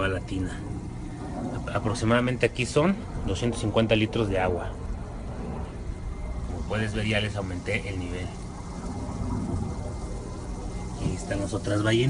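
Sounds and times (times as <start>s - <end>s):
low hum: 0.0s - 12.0s
water filter rushing water: 0.0s - 12.0s.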